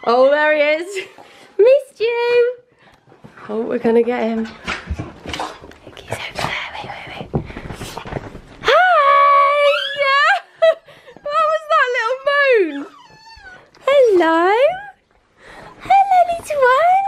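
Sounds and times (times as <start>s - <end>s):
soft rustling: 3.1s - 8.7s
puppy whining: 9.4s - 10.4s, 11.0s - 15.0s.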